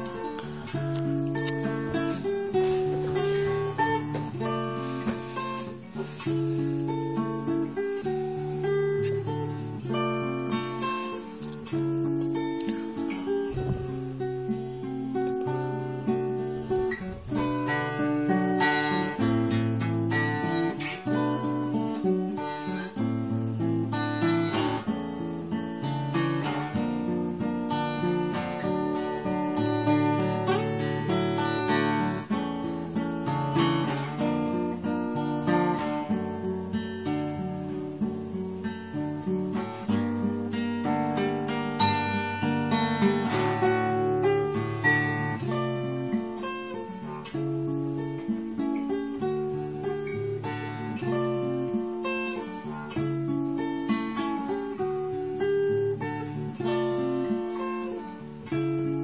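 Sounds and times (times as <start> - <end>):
acoustic guitar strumming: 0.0 - 59.0.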